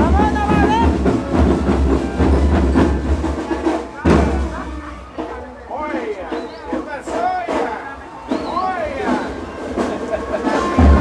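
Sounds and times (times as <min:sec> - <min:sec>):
heavy bass drums: 0:00.0 - 0:05.6, 0:09.1 - 0:11.0
marching percussion band: 0:00.0 - 0:11.0.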